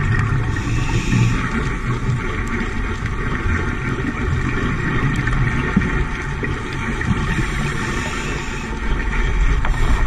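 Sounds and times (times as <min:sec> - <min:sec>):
underwater rumble: 0:00.0 - 0:10.0
hiss: 0:00.5 - 0:01.5.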